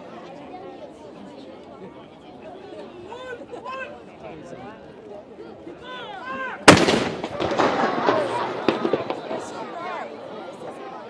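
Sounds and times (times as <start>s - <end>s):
spectators' voices: 0.0s - 11.0s
howitzer firing boom: 6.7s - 9.6s.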